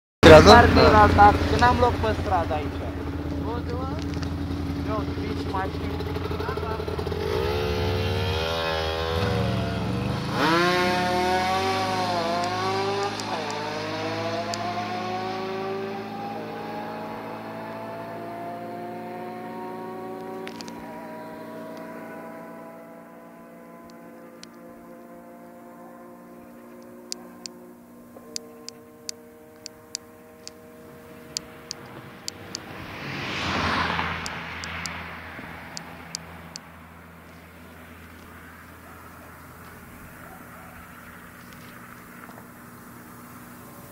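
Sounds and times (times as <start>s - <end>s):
atv engine accelerating: 0.2s - 43.9s
motorcycle engine accelerating: 0.2s - 43.9s
rushing air: 31.9s - 36.5s.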